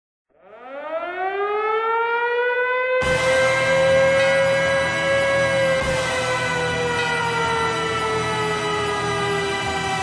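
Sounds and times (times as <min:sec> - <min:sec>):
siren winding up: 0:00.3 - 0:10.0.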